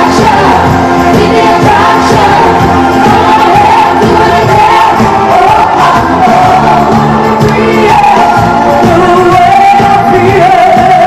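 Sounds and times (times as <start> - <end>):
live pop band playing: 0.0 - 11.0
woman singing into a microphone: 0.0 - 11.0.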